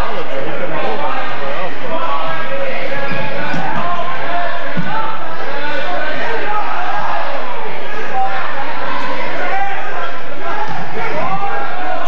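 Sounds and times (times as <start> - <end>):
loud crowd voices: 0.0 - 12.0.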